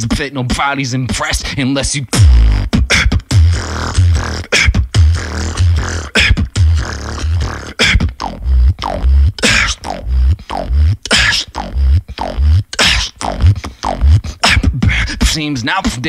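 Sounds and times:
person beatboxing: 0.0 - 16.0.

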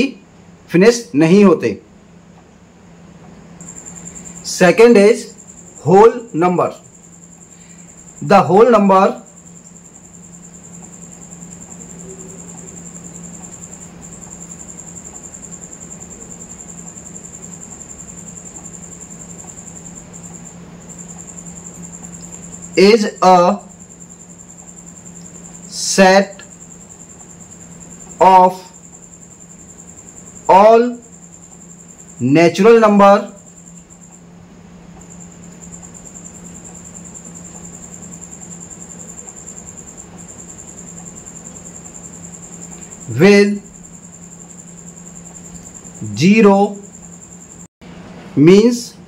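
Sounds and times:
man speaking: 0.0 - 1.8, 4.4 - 6.8, 8.2 - 9.3, 22.8 - 23.7, 25.7 - 26.4, 28.2 - 28.7, 30.5 - 31.0, 32.2 - 33.4, 43.1 - 43.7, 46.0 - 46.8, 48.4 - 49.0
insect chirping trill: 0.0 - 47.8
low steady hum: 0.0 - 49.0.

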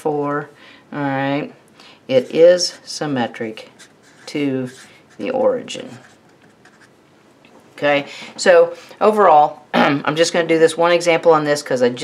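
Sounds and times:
marker pen scratching on paper: 3.6 - 7.0.

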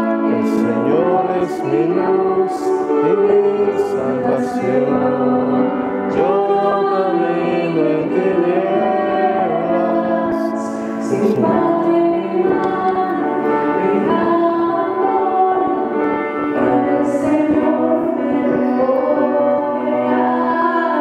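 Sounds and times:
grand piano accompaniment: 0.0 - 21.0
woman singing church song: 0.0 - 21.0.

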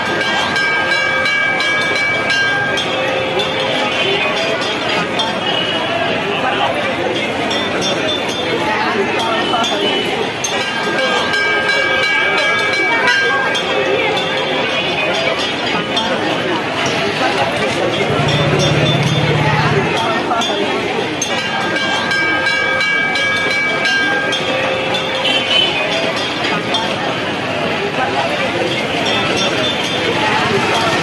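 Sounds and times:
crowd voices chattering: 0.0 - 31.0.

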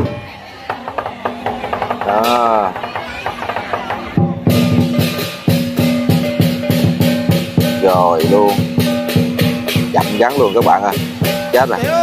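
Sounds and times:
drum and cymbal beats: 0.0 - 12.0.

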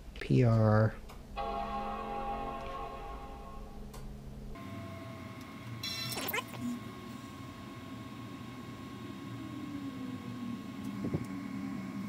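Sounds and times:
computer startup chime chord: 1.4 - 3.9.

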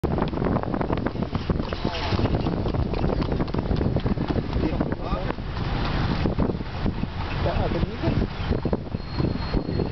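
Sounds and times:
vehicle rumble and rattling: 0.0 - 9.9
wind buffeting microphone: 0.0 - 9.9.

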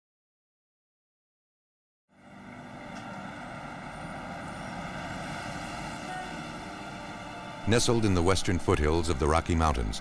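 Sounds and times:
distant vehicle drone: 2.1 - 9.8.

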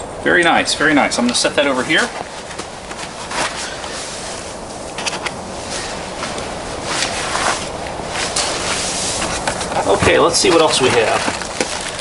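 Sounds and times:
outdoor background hiss: 0.0 - 12.0
footsteps: 1.2 - 12.0
cardboard packaging rustling: 1.7 - 12.0.

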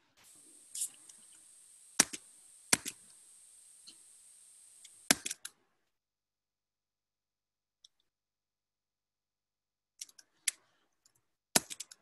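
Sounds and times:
faint steady hiss: 0.0 - 5.3
computer mouse clicks: 2.0 - 3.2.

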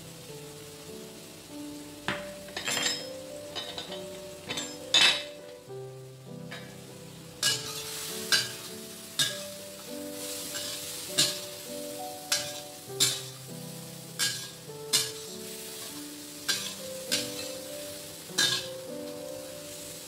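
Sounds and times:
background piano music: 0.0 - 20.0
shrimp sizzling in pan: 0.0 - 20.0
metal spatula scraping wok: 7.4 - 11.7, 12.3 - 13.4, 14.0 - 19.1.

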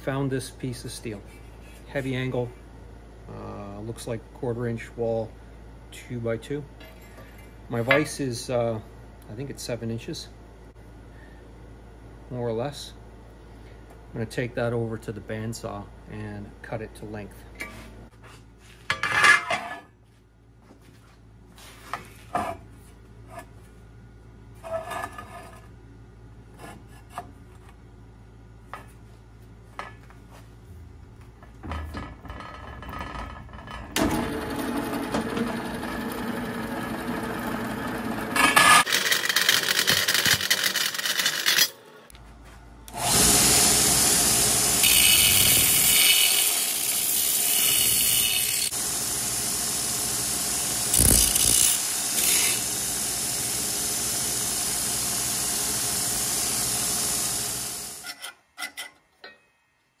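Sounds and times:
bandsaw motor humming: 33.9 - 41.9, 42.9 - 58.0
belt grinder grinding steel: 34.0 - 41.8, 42.9 - 48.8, 50.8 - 52.8
bandsaw cutting steel: 34.0 - 41.9, 42.9 - 58.4.

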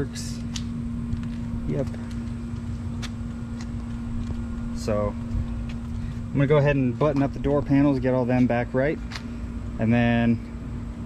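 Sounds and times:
low rumble: 0.0 - 10.2
mechanical hum: 0.0 - 11.0.

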